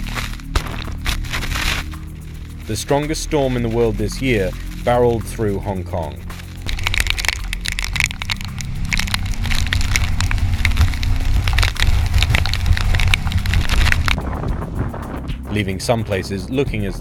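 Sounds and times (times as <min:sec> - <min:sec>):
deep rumble: 0:00.0 - 0:17.0
wind buffeting microphone: 0:06.8 - 0:15.9.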